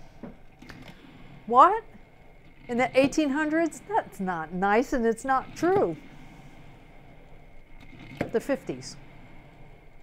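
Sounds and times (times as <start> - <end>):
electric percolator perking: 0.6 - 10.0.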